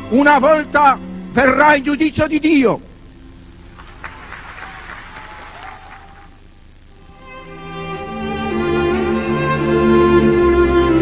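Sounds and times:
audience applauding: 3.6s - 6.4s.

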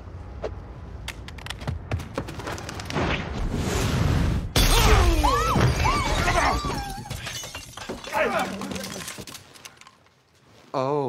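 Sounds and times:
glass shattering: 4.6s - 9.5s
glass pieces falling: 4.6s - 10.0s
voices crying out: 4.7s - 7.4s.

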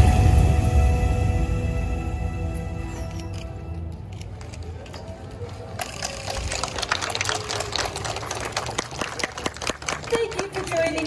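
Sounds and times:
audience applause: 4.4s - 11.0s.

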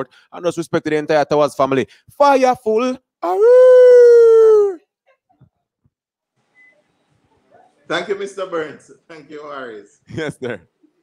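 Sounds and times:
man howling into microphone: 3.2s - 4.8s.

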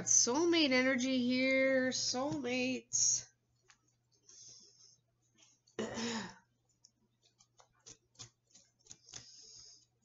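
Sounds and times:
woman clearing her throat: 5.8s - 6.4s
cards clicking and tapping: 7.2s - 9.9s.

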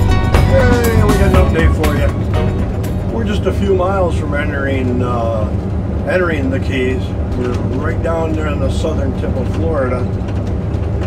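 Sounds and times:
background music: 0.0s - 4.2s
vehicle drone inside cab: 0.0s - 11.0s
man talking: 0.3s - 2.5s, 3.1s - 10.1s.

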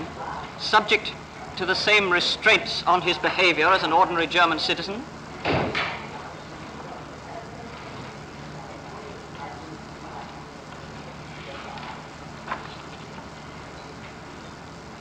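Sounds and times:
faint murmuring voices: 0.0s - 15.0s
recording hiss and hum: 0.0s - 15.0s.

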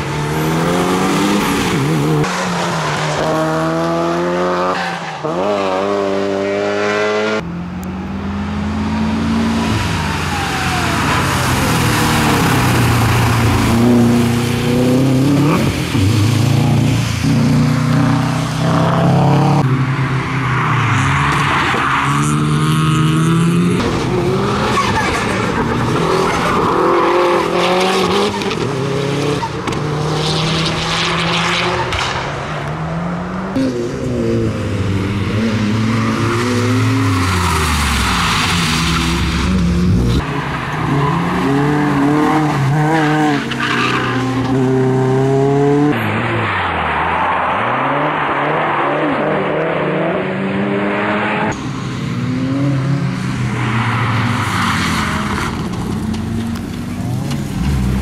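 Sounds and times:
rally car engines at full throttle: 0.0s - 58.0s.

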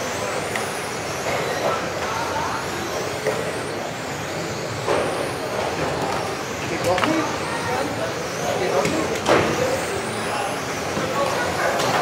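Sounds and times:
rc car motors whining: 0.0s - 12.0s.

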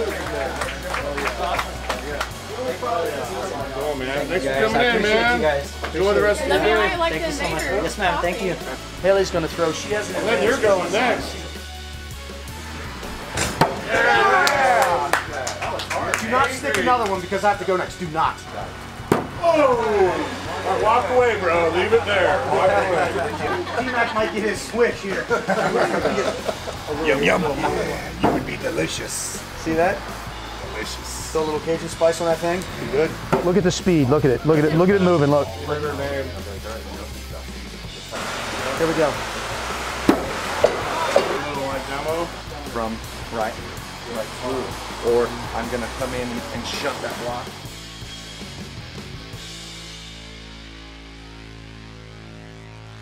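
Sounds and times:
knife hitting wooden target: 19.1s - 19.4s, 40.1s - 40.3s
knife striking wooden target: 19.1s - 19.4s.

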